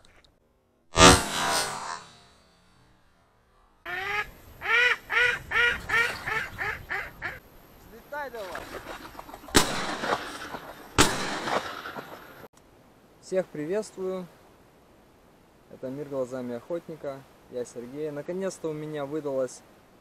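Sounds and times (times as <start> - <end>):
shotgun shots: 0.9 - 2.3, 9.5 - 12.5
duck quacking: 3.9 - 7.4.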